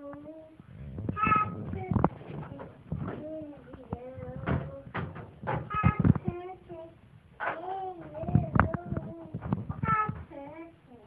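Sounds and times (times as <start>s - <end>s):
sharp short knocks: 4.4s - 6.4s.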